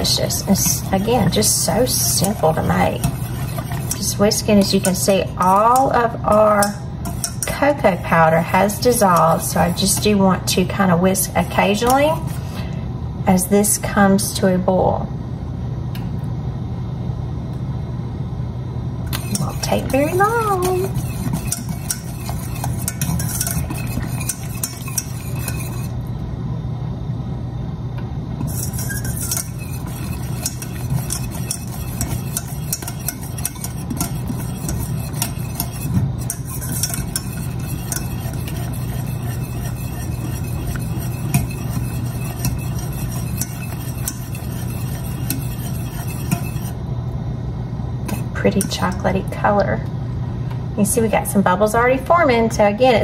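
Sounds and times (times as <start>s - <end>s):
whisk clinking against pan: 0.0s - 10.1s, 19.1s - 25.9s, 28.4s - 46.7s
whisk stirring liquid in saucepan: 0.0s - 12.4s, 19.1s - 26.0s, 28.4s - 46.8s.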